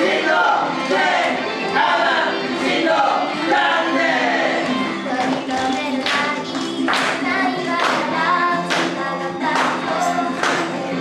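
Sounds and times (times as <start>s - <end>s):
pop backing track: 0.0s - 11.0s
young women singing in unison: 1.8s - 11.0s.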